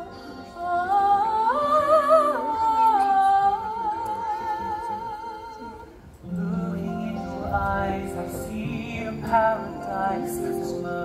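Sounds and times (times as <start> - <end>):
stage musical backing music: 0.0 - 11.0.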